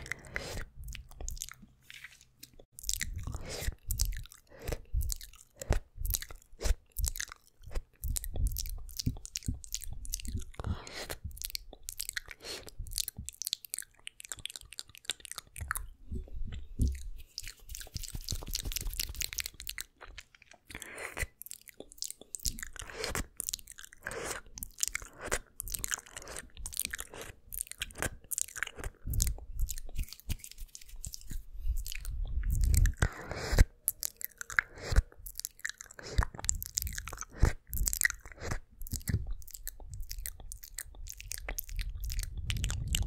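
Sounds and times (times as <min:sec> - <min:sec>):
soft breathy mouth sounds: 0:00.0 - 0:43.0
tongue and lip clicks: 0:00.0 - 0:43.0.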